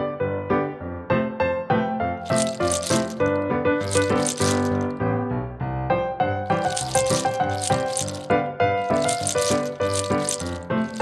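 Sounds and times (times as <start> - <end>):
candies rattling in plastic: 2.2 - 5.0, 6.5 - 11.0
light instrumental music: 6.5 - 11.0.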